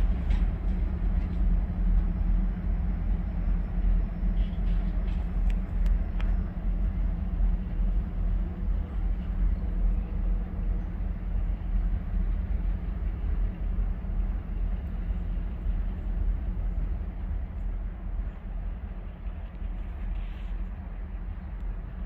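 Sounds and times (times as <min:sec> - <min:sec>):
distant freight train rumble: 0:00.0 - 0:22.0
faint clicks: 0:04.4 - 0:06.4.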